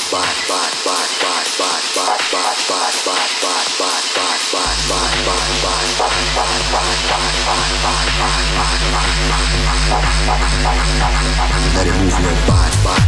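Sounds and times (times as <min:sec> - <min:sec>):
tech house dj mix: 0:00.0 - 0:13.0.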